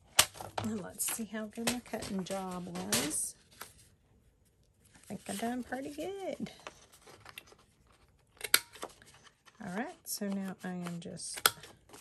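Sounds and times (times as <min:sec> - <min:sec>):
paper handling: 0:00.2 - 0:04.0, 0:04.9 - 0:12.0.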